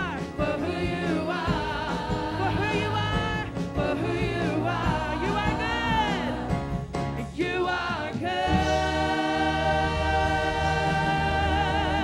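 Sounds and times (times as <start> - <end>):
women singing in harmony: 0.0 - 6.6, 7.4 - 12.0
band accompaniment: 0.0 - 12.0.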